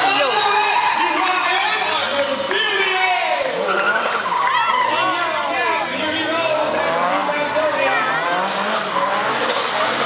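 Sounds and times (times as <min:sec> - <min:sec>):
car engine revving: 0:05.2 - 0:10.0.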